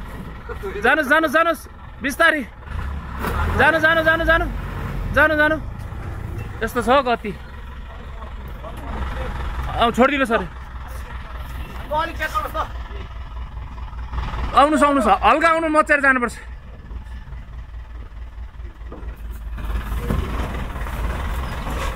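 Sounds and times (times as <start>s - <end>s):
truck engine low rumble: 0.0s - 21.9s.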